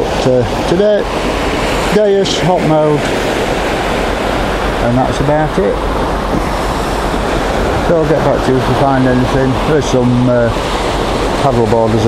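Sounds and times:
waves breaking on sandy shore: 0:00.0 - 0:12.0
wind on microphone: 0:00.0 - 0:12.0.

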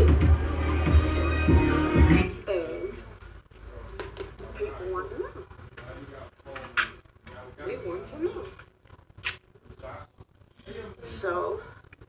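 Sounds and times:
faint television voices: 0:02.3 - 0:12.0.

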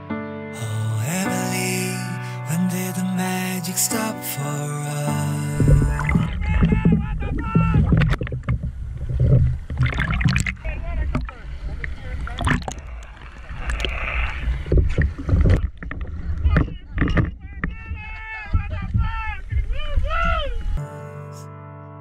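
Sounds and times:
sea water sloshing and splashing: 0:05.5 - 0:17.8
voices: 0:16.2 - 0:20.8.

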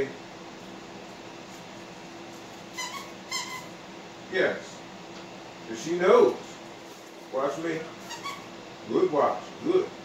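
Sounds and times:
squeaky dog toy squeaking: 0:02.7 - 0:03.7, 0:08.0 - 0:08.4.

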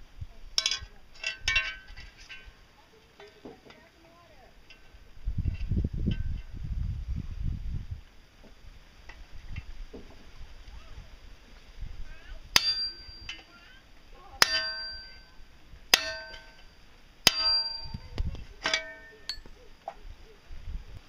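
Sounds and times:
hammer striking steel punch: 0:12.6 - 0:13.4, 0:14.4 - 0:15.3, 0:15.9 - 0:16.7, 0:17.3 - 0:18.0.

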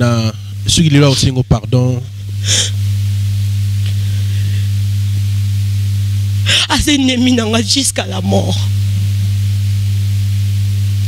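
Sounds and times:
low electrical hum: 0:00.0 - 0:11.0
person gasping: 0:02.4 - 0:02.8, 0:03.9 - 0:04.7, 0:06.5 - 0:06.7.

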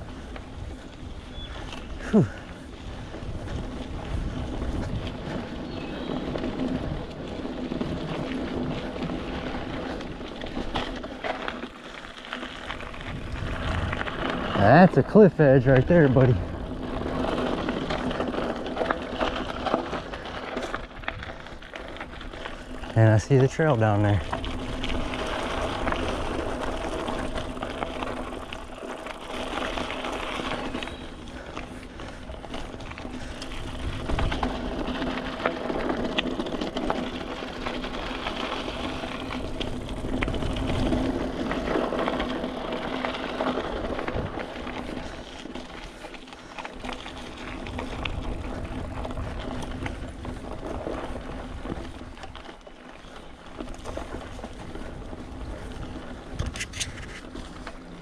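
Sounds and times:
bike rattling and clicking: 0:00.0 - 0:58.0
bike tyres on packed dirt: 0:00.0 - 0:58.0.

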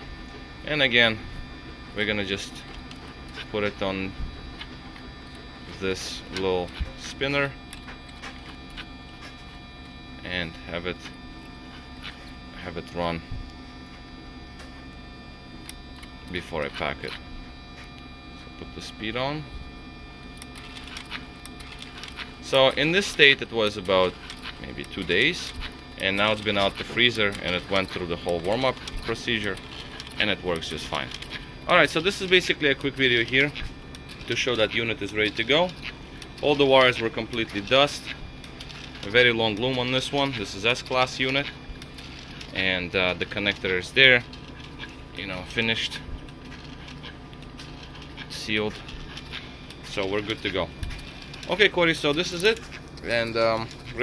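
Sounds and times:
electric motor running: 0:00.0 - 0:54.0
steady electrical hum: 0:00.0 - 0:54.0
wiring loom handling noise: 0:20.4 - 0:54.0.

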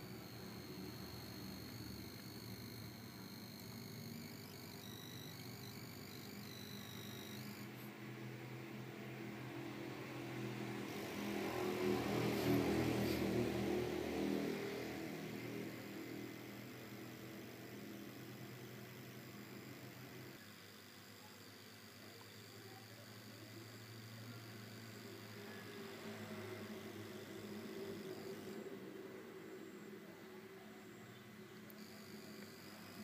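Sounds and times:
steady mechanical hum: 0:00.0 - 0:33.0.

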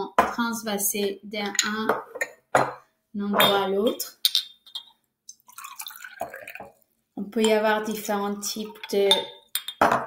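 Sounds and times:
glass jars clinking: 0:01.4 - 0:02.8, 0:03.4 - 0:06.7, 0:07.4 - 0:10.0
water pouring into glass jar: 0:04.7 - 0:09.8.

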